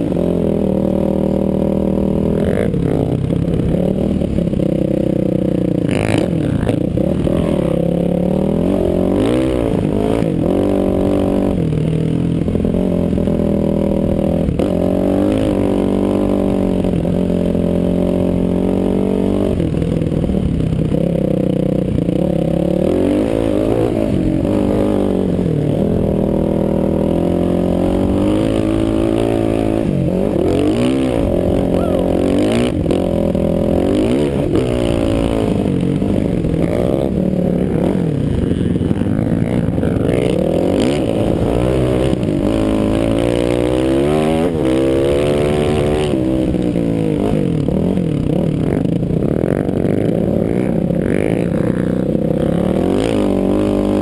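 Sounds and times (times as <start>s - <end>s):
atv engine revving: 0.0s - 54.0s.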